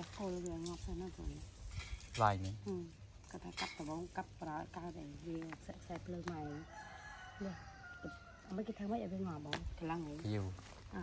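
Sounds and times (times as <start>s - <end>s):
rooster crowing: 6.4s - 8.9s.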